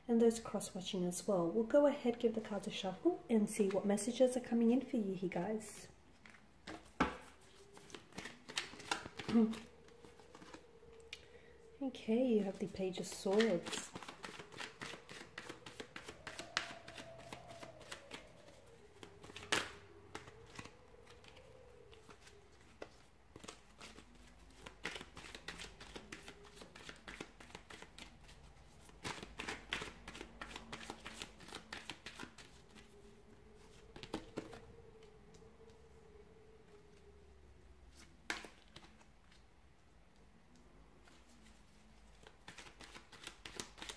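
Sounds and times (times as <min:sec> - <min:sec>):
cards shuffling: 0:06.1 - 0:11.2, 0:12.9 - 0:35.4, 0:37.9 - 0:39.4, 0:41.0 - 0:43.9
cards slapping: 0:06.2 - 0:10.7, 0:13.3 - 0:32.9, 0:33.7 - 0:34.6, 0:38.0 - 0:39.4, 0:42.2 - 0:43.9.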